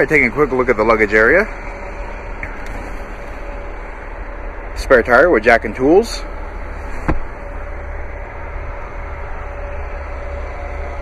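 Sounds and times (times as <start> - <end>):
low rumble and hiss: 0.0 - 11.0
cargo floor panel thump: 7.0 - 7.4.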